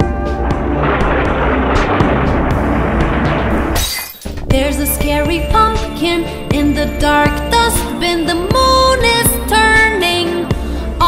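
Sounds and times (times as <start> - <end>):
short bright crash: 0.6 - 4.4
tune with jingling bells: 4.6 - 10.2.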